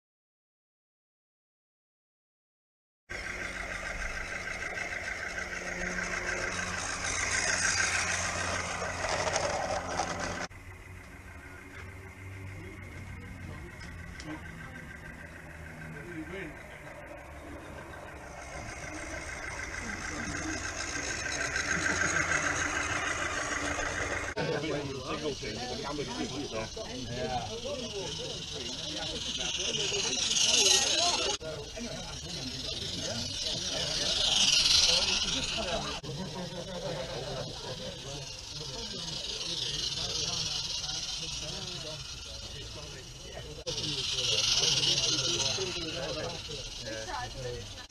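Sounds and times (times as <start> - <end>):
model train hiss and rattle: 3.1 - 47.9.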